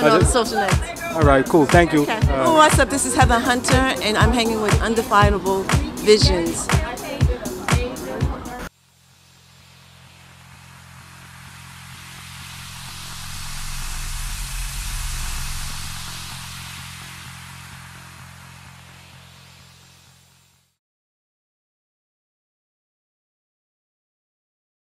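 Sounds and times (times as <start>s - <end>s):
rushing hiss: 9.1s - 20.6s
low droning chord: 10.4s - 17.9s.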